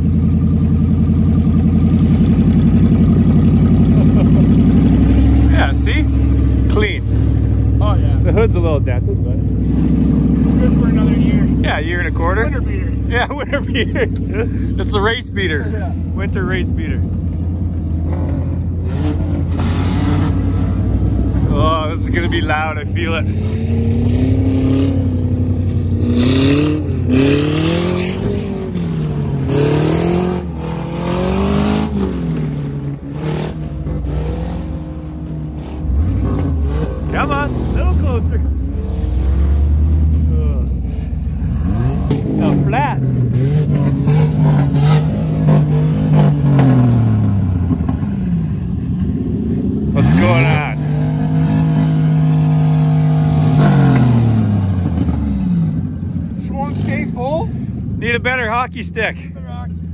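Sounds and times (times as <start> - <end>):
car engine revving hard: 1.3 - 17.2, 17.8 - 58.4.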